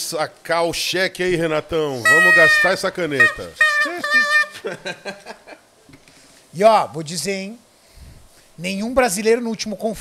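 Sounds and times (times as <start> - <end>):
high-pitched vocal squeal: 2.1 - 4.6.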